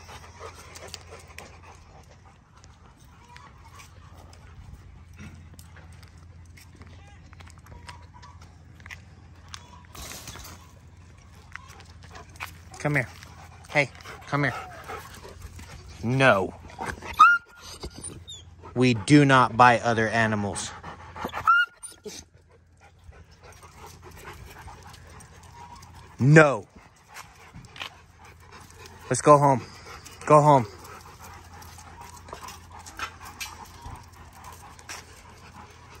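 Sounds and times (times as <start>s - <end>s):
dogs panting: 0.0s - 6.8s, 7.4s - 36.0s.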